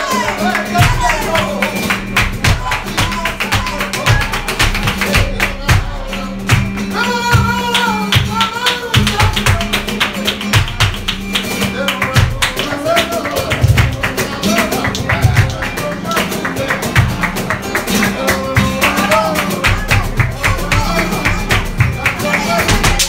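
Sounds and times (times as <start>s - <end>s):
cajon thumps: 0.0s - 23.0s
fast hand-clapping: 0.0s - 23.0s
person singing: 0.0s - 23.0s
two guitars playing: 0.0s - 23.0s.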